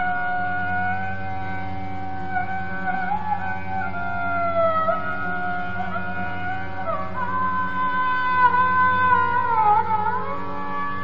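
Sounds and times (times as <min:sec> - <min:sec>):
sarangi bowing a long note: 0:00.0 - 0:11.0
tanpura drone: 0:00.0 - 0:11.0.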